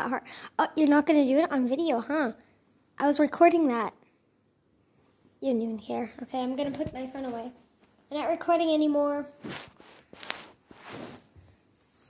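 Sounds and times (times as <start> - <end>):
phone rustling against microphone: 6.5 - 8.1, 9.4 - 12.0.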